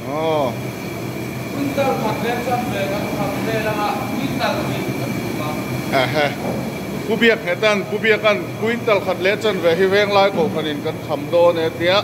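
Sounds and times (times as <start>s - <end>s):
gas burner roaring: 0.0s - 12.0s.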